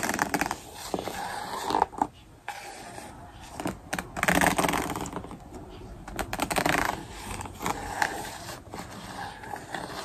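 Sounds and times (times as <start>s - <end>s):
hairbrush scratching notebook cover: 0.0s - 5.4s, 6.1s - 10.0s.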